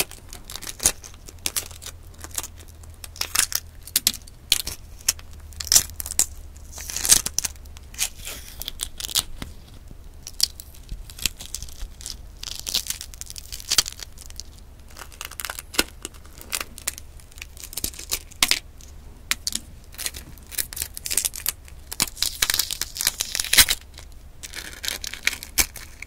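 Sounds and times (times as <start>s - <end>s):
shell membrane tearing: 0.0s - 18.7s, 19.3s - 26.0s
eggshell crackling: 0.0s - 26.0s.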